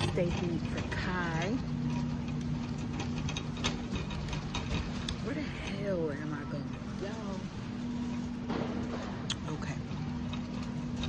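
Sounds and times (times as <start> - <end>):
light clicks and rattles: 0.0 - 11.0
low hum and rumble: 0.0 - 11.0.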